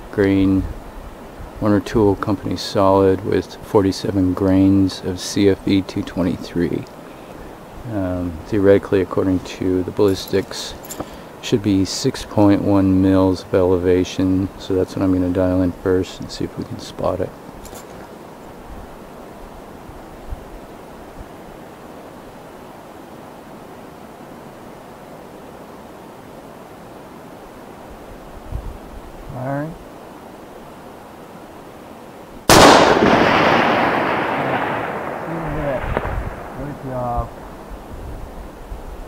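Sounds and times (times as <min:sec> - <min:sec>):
rifle shot with echo: 0:32.5 - 0:37.7.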